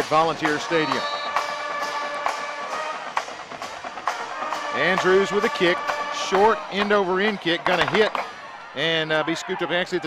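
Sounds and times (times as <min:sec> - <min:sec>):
horns holding a chord: 0:00.1 - 0:07.8
drum hits: 0:04.8 - 0:08.3.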